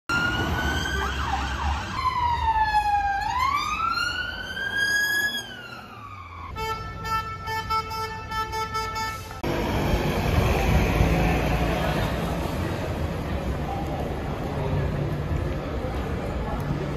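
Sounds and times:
police siren wailing: 0.1 - 6.9
street traffic noise: 0.1 - 16.9.

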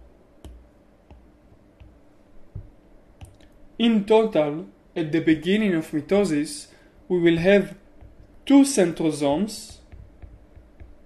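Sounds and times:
stylus tapping on tablet screen: 0.4 - 3.5, 7.5 - 11.0
man talking: 3.8 - 7.8, 8.5 - 9.8.

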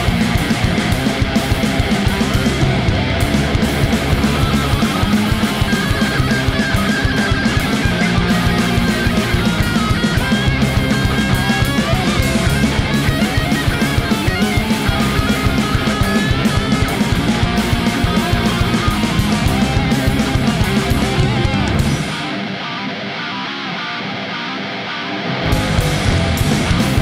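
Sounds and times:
metal punk band playing live: 0.0 - 27.0.

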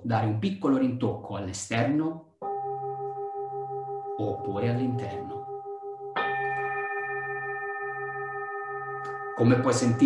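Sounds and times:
singing bowl ringing: 2.4 - 10.0.

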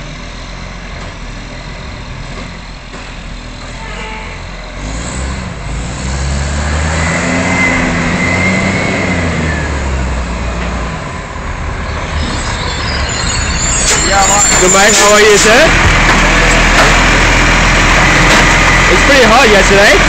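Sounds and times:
garbage truck diesel engine accelerating: 0.0 - 20.0
thin engine whine: 5.0 - 20.0.

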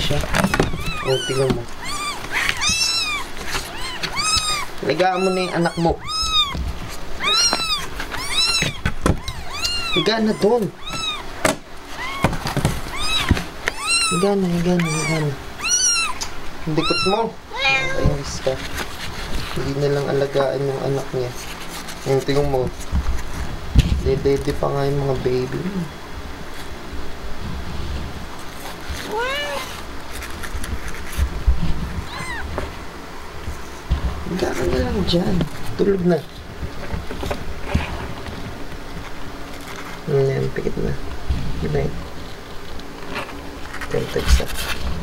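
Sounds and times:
cat meowing: 0.0 - 6.6, 7.2 - 18.4, 29.0 - 29.8, 32.0 - 32.7
kittens mewing: 0.0 - 19.0, 29.0 - 30.0, 32.0 - 32.8.

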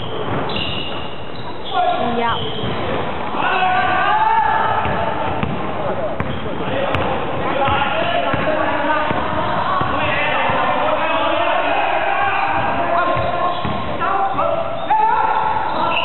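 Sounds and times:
shoe squeaks: 0.0 - 3.0, 6.2 - 6.6, 13.2 - 16.0
basketball dribbling on wooden floor: 4.8 - 10.7.

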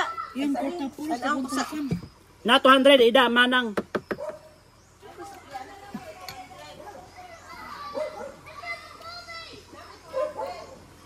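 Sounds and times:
children playing: 0.0 - 2.4, 4.8 - 11.0
people chattering: 4.6 - 11.0.

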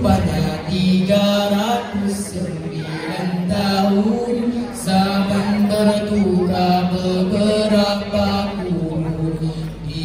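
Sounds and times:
group chanting through microphones: 0.0 - 10.0.

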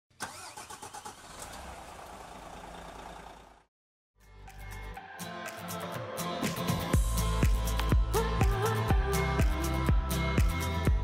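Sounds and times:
engine starting and running: 0.1 - 3.7.

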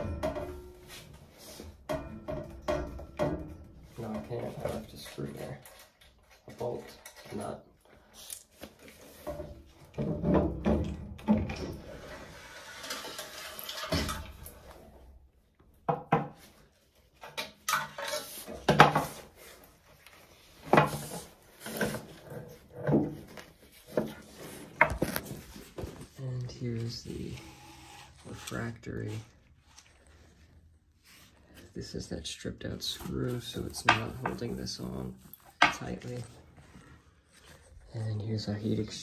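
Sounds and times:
metal knocks and clanks: 0.0 - 5.0, 9.2 - 12.0
metal scraping: 11.8 - 14.3.

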